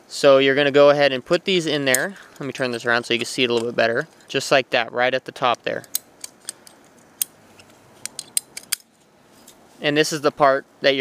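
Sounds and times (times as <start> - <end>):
ratcheting pipe cutter clicking: 8.0 - 8.9.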